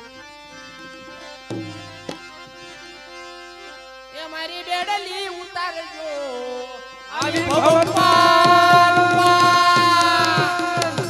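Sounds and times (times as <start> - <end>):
harmonium held notes: 0.0 - 11.0
sharp tabla strikes: 1.5 - 2.3, 7.2 - 11.0.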